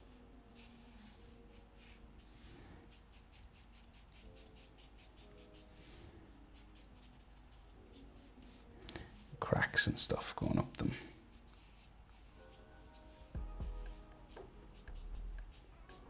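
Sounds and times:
marker pen scratching on paper: 0:00.0 - 0:09.4, 0:11.2 - 0:16.0.

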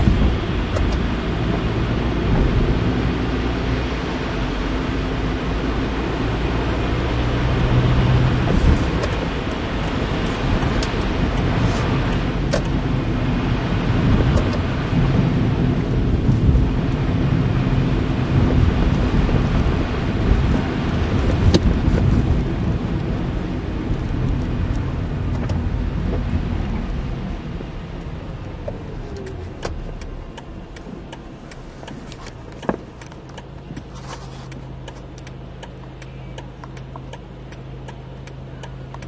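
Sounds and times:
car engine hum: 0:00.0 - 0:39.0
tyre noise on wet road: 0:00.0 - 0:39.0
light ticks: 0:28.0 - 0:39.0.

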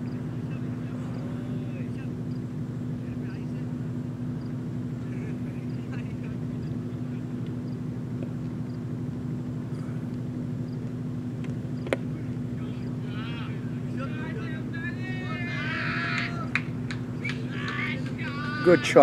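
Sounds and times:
faint distant voices: 0:00.0 - 0:08.4, 0:12.0 - 0:19.0
low hum: 0:00.0 - 0:19.0.

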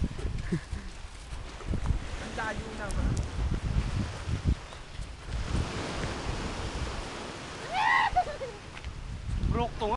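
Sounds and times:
wind rumble: 0:00.0 - 0:09.9.

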